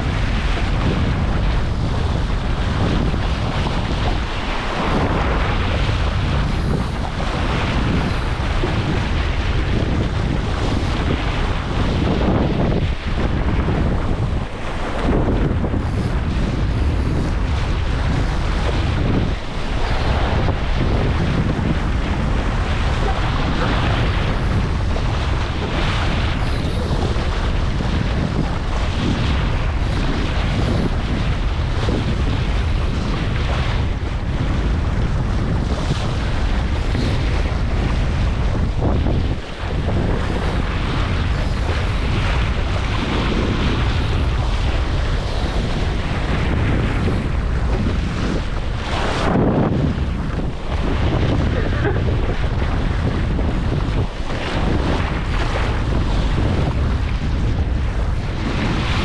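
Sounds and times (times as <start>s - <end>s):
water splashing along a hull: 0.0s - 59.0s
wind buffeting microphone: 0.0s - 59.0s.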